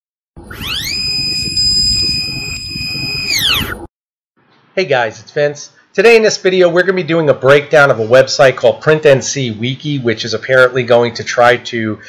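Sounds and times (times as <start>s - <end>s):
electronic gliding tone: 0.4s - 3.9s.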